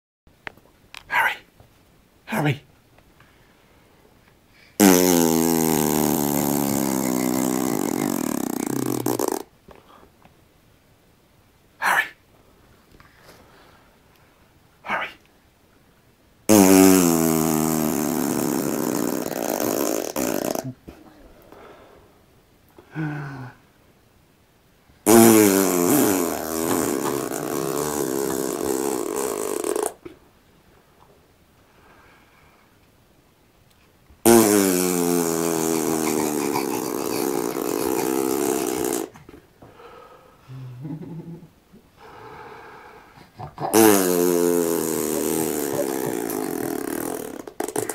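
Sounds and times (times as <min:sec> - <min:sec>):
person blowing a raspberry: 0:04.8 - 0:09.5, 0:16.5 - 0:20.8, 0:25.1 - 0:30.0, 0:34.3 - 0:39.2, 0:43.5 - 0:47.9.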